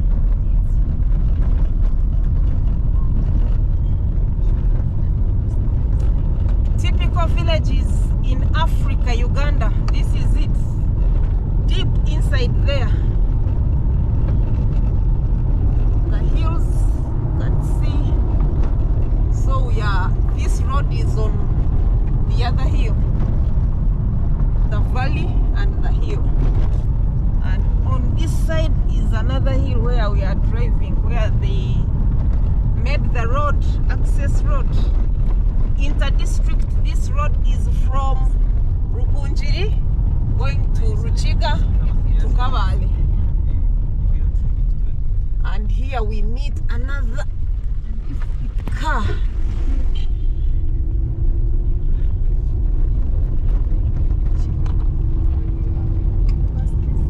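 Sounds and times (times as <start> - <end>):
car interior rattles and clicks: 0.0 - 57.0
engine and tyres rumbling: 0.0 - 57.0.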